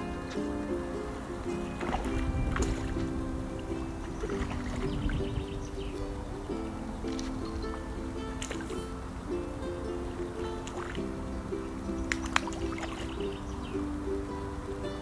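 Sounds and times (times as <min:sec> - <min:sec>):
background music of held chords: 0:00.0 - 0:15.0.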